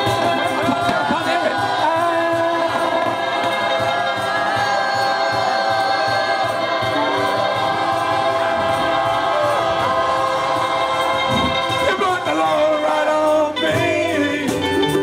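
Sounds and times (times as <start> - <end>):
group singing held notes: 0.0 - 15.0
ukulele band strumming: 0.0 - 15.0.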